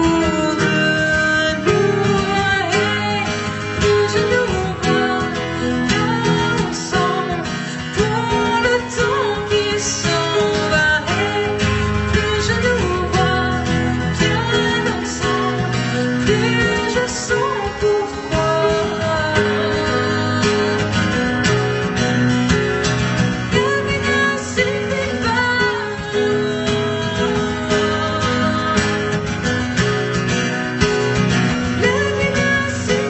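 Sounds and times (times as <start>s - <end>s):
woman singing: 0.0s - 22.3s, 23.4s - 30.0s, 31.6s - 33.0s
acoustic guitar strumming: 0.0s - 33.0s.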